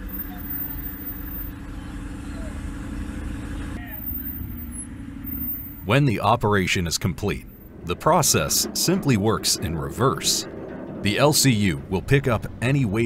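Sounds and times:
diesel engine running: 0:00.0 - 0:13.0.

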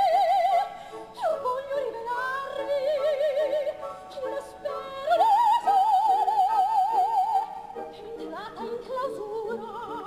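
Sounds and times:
soprano singing opera: 0:00.0 - 0:10.0.

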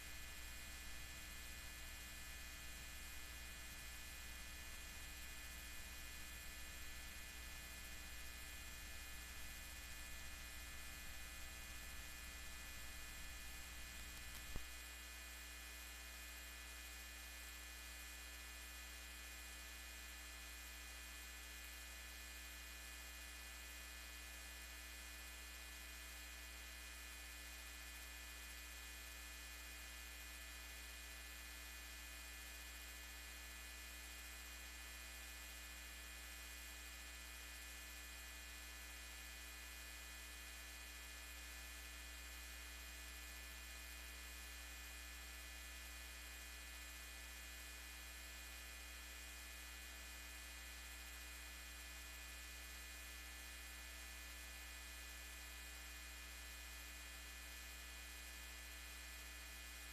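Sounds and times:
electrical mains hum: 0:00.0 - 0:29.8.

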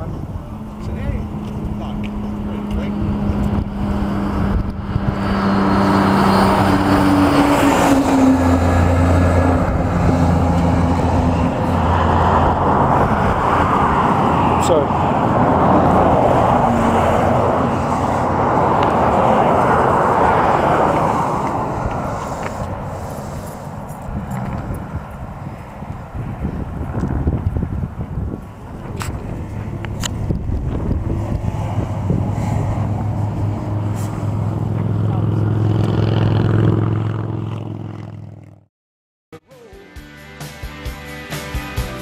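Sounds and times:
motorcycle engines idling: 0:00.0 - 0:04.2, 0:21.8 - 0:26.0
wash of noise: 0:00.2 - 0:23.9, 0:28.5 - 0:36.4.

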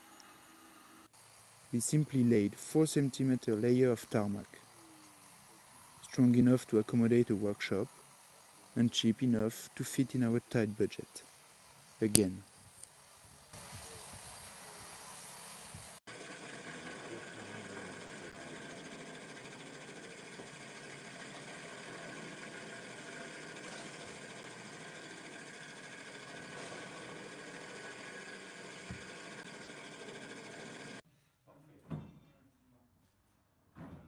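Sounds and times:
floor grinding machine running: 0:16.1 - 0:31.0.

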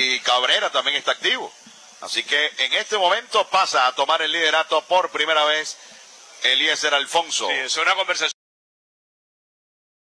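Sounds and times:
male sports commentator talking: 0:00.0 - 0:05.8, 0:06.4 - 0:08.4.

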